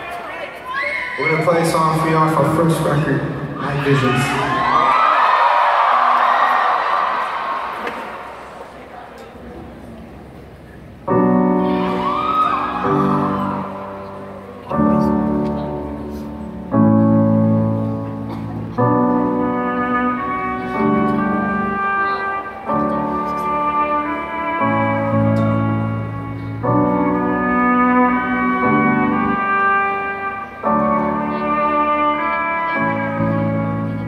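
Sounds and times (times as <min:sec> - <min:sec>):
acoustic band playing chords: 0:10.3 - 0:34.0.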